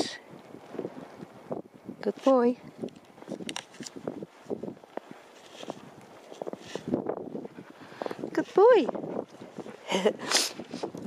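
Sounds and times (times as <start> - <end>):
footsteps crunching in snow: 2.8 - 11.0.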